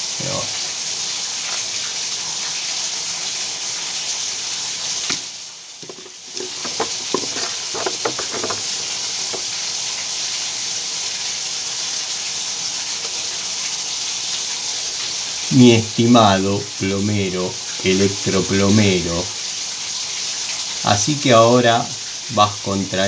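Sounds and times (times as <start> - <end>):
water running and draining: 1.3 - 23.0.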